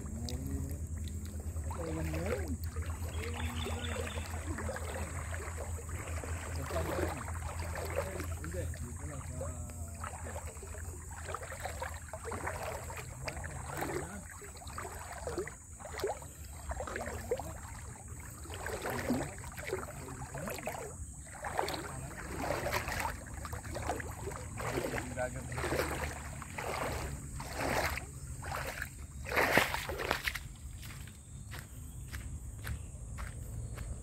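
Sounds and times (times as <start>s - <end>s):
water splashing from wading: 0.0s - 31.0s.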